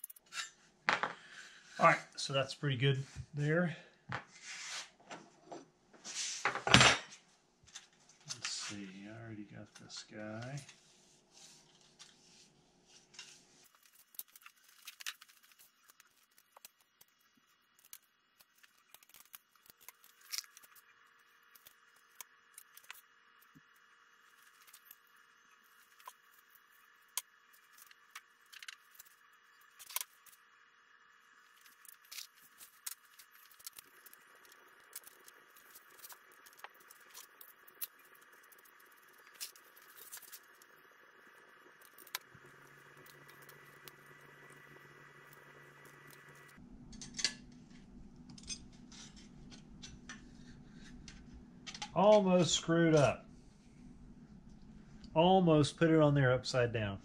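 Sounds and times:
faint steady hum: 5.0 - 57.0.

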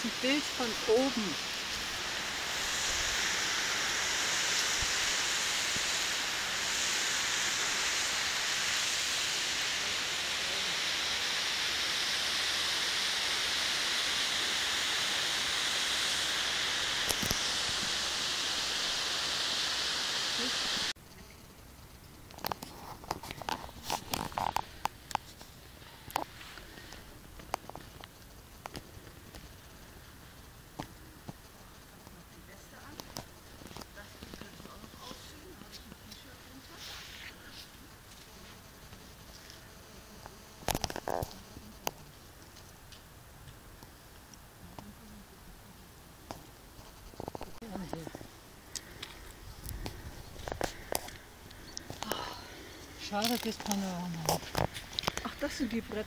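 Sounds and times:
rustling: 46.3 - 56.0
barefoot footsteps on dirt path: 53.1 - 55.5.

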